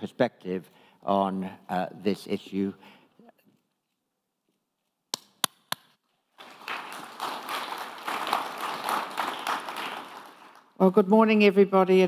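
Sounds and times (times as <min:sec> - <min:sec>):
audience applauding: 0:06.3 - 0:10.8.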